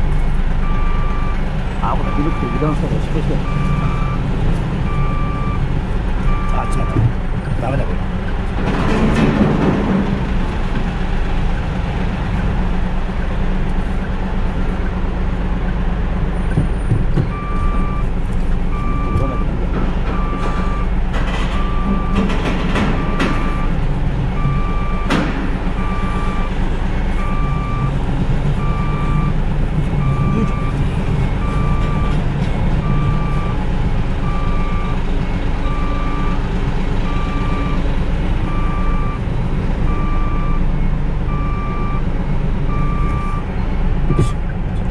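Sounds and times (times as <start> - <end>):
reversing alarm beeping: 0.0 - 4.3, 4.9 - 5.6, 6.3 - 7.1, 16.7 - 20.9, 21.5 - 23.8, 24.4 - 28.0, 28.6 - 29.4, 30.0 - 33.6, 34.2 - 36.4, 37.0 - 37.8, 38.5 - 39.3, 39.9 - 42.1, 42.7 - 43.5, 44.1 - 44.4
truck diesel engine running: 0.0 - 44.9.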